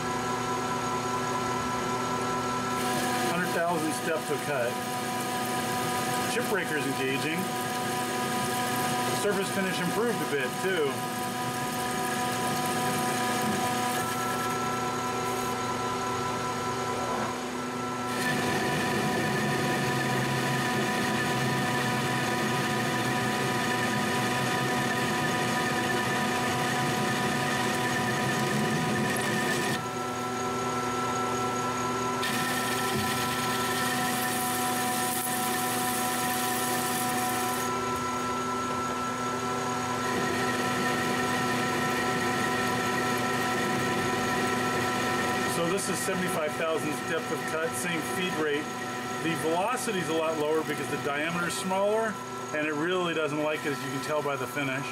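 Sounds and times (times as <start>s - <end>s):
metal lathe motor whine: 0.0s - 54.9s
lathe tool cutting steel: 2.7s - 17.4s, 18.0s - 54.9s.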